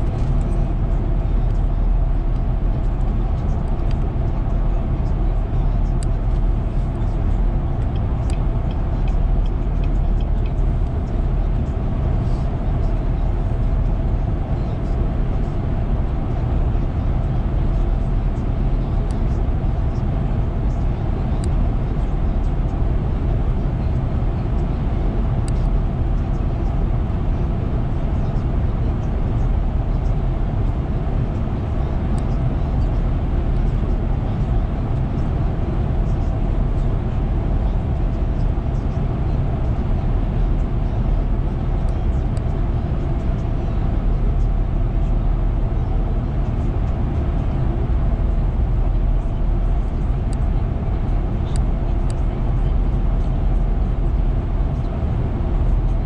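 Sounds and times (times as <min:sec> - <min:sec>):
car road noise at highway speed: 0:00.0 - 0:56.0.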